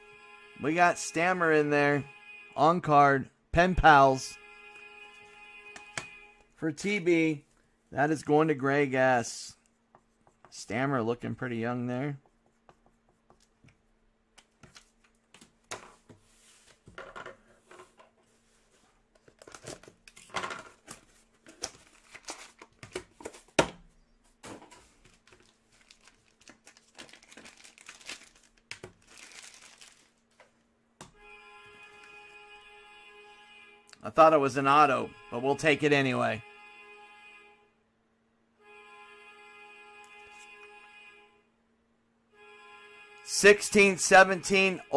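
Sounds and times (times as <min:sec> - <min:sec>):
plastic wrapper crinkling: 0:19.2 - 0:23.0, 0:25.0 - 0:30.3.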